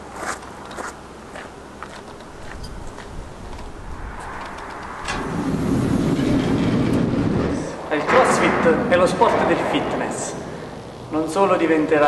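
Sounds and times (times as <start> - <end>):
sliding door rumbling open: 2.1 - 11.3.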